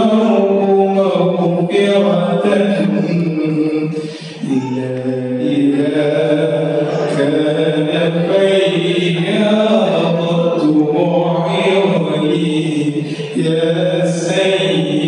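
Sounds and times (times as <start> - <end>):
man singing a devotional chant: 0.0 - 15.0.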